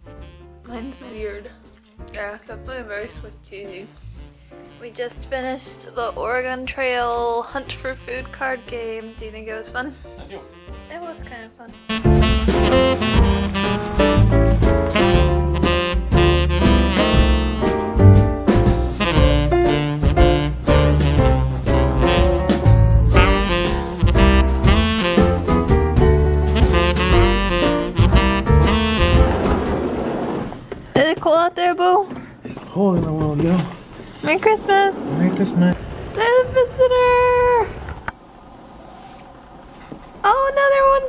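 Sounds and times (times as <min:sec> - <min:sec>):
lively jazz music: 0:00.0 - 0:31.8.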